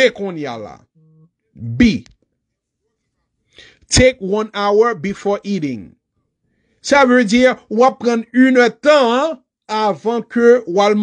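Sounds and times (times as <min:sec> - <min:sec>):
man speaking: 0:00.0 - 0:00.9, 0:01.6 - 0:02.2, 0:03.9 - 0:06.0, 0:06.8 - 0:11.0
sharp burst of breath: 0:03.5 - 0:03.9.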